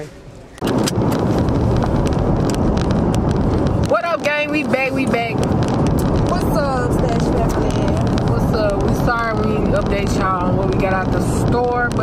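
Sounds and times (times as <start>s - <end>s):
road and wind noise in car: 0.0s - 12.0s.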